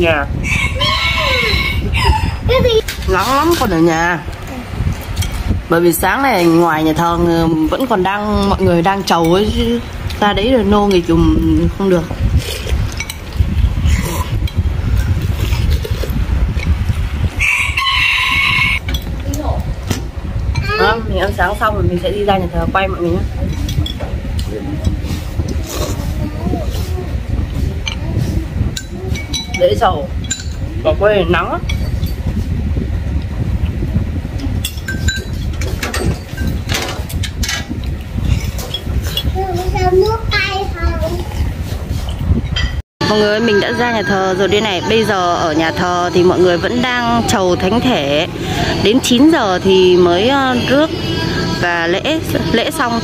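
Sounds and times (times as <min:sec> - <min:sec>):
steady low rumble: 0:00.0 - 0:53.0
rooster crowing: 0:00.4 - 0:02.4, 0:17.4 - 0:18.8.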